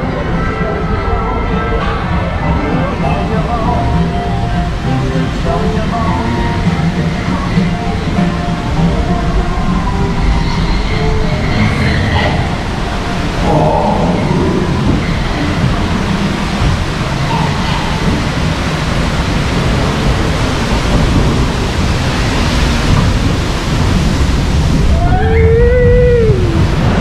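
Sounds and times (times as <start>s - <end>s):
churning water rushing and splashing: 0.0s - 27.0s
voice-like call: 13.4s - 15.5s.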